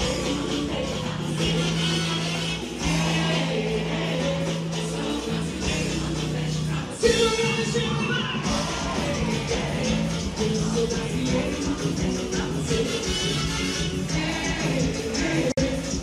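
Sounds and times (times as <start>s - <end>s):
loud live music over sound system: 0.0s - 16.0s
person singing: 0.0s - 16.0s.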